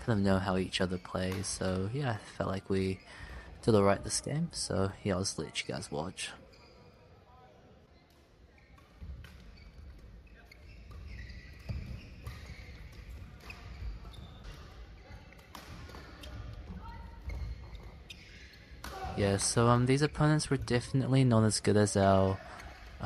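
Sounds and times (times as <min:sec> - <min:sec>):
rackets hitting shuttlecock: 0:08.1 - 0:19.7.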